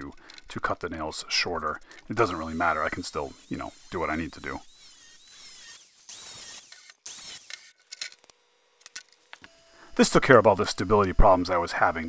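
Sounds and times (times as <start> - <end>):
angle grinder cutting metal: 2.0 - 8.3, 9.4 - 12.0.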